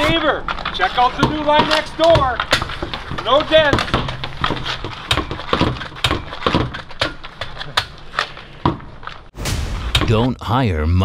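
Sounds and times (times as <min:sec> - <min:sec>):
hockey pucks knocking hard surface: 0:00.1 - 0:06.9.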